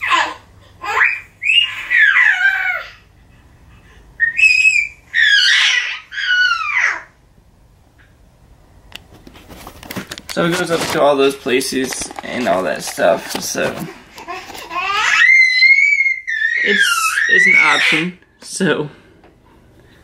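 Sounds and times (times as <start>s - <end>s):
baby's high-pitched calls: 0.0s - 3.0s, 4.2s - 7.2s, 14.7s - 18.1s.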